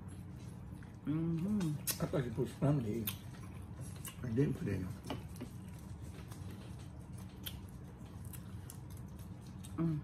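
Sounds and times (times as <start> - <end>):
low steady hum: 0.0 - 10.0
people chewing food: 0.0 - 10.0.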